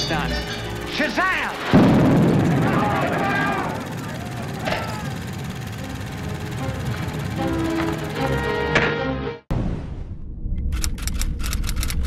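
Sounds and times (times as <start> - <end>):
low boom rumble: 1.7 - 4.0, 9.5 - 11.4.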